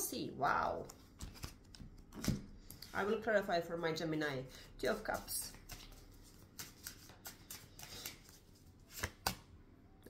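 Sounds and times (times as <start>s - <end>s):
cards being shuffled: 0.8s - 2.9s, 4.9s - 9.5s.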